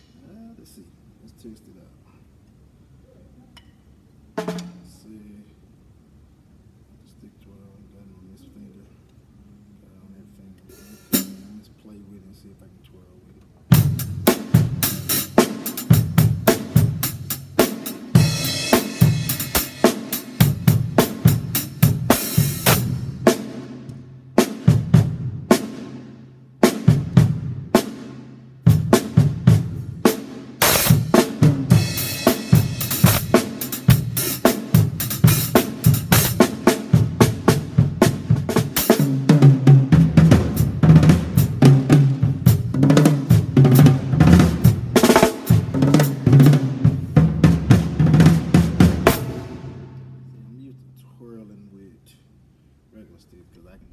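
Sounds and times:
drum kit playing: 3.6 - 5.1, 10.7 - 11.6, 13.7 - 51.2, 53.6 - 53.9.

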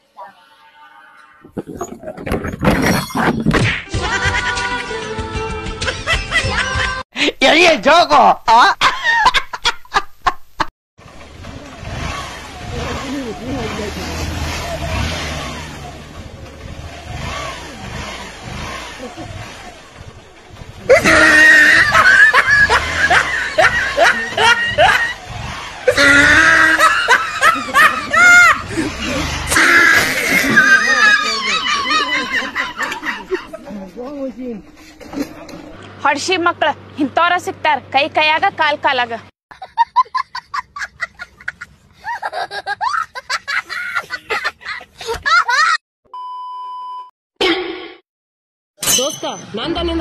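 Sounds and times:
person laughing: 5.8 - 7.0, 8.5 - 10.4, 20.9 - 25.2, 25.9 - 33.9, 39.5 - 45.8.

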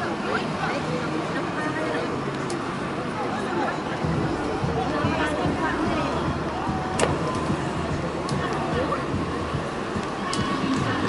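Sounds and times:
steady low rumble: 3.8 - 11.0.

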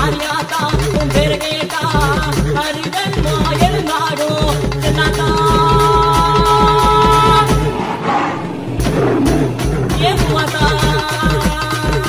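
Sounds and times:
music bass beat: 2.0 - 7.8, 8.6 - 12.0
friction drum rough gliding roar: 3.2 - 12.0.

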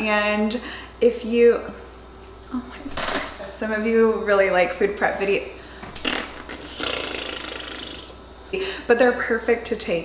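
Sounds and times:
woman blowing a raspberry: 6.0 - 8.1.

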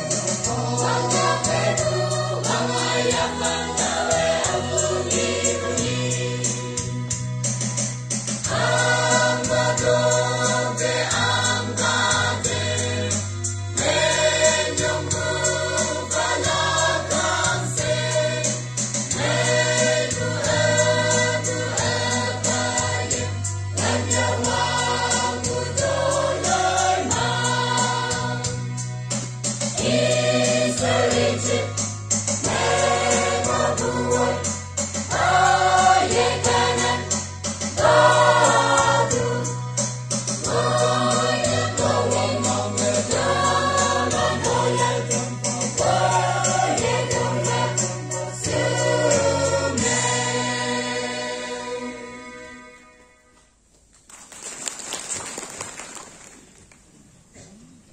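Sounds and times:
church choir singing: 0.0 - 7.1, 8.5 - 29.0, 29.7 - 52.8.

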